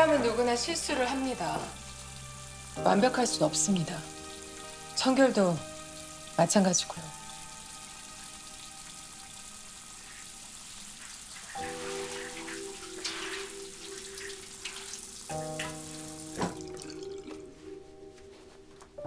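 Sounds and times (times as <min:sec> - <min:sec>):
tap water running into sink: 0:00.0 - 0:17.5
soft background music: 0:00.0 - 0:19.0
water splashes: 0:10.0 - 0:17.5.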